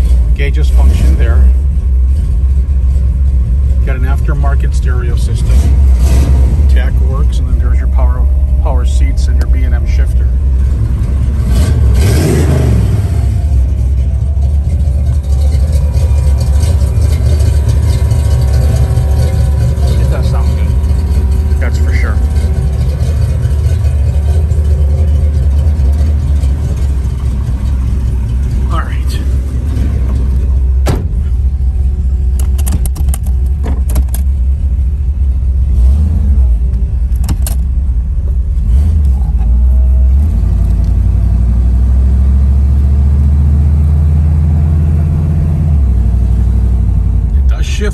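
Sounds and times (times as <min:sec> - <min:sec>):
car engine rumbling: 0:00.0 - 0:47.9.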